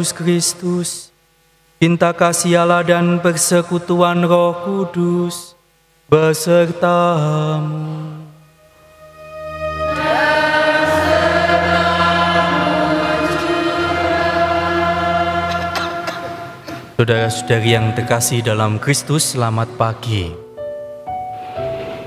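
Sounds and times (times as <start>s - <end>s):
priest chanting: 0.0s - 1.1s, 1.8s - 20.4s
congregation singing: 6.1s - 18.8s
sustained low accompaniment: 8.4s - 20.7s.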